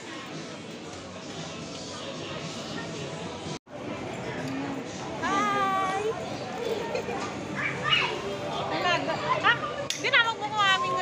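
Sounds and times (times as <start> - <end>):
background chatter: 0.0 - 11.0.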